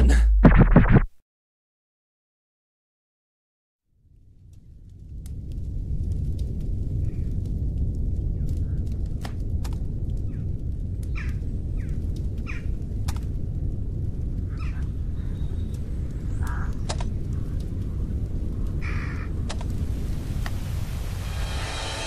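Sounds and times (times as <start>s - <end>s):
steady low rumble: 4.1s - 22.0s
crow-like caws: 11.1s - 12.8s, 14.5s - 15.4s, 16.4s - 17.6s, 18.8s - 19.4s
sharp clicks: 16.4s - 17.7s, 19.5s - 19.8s.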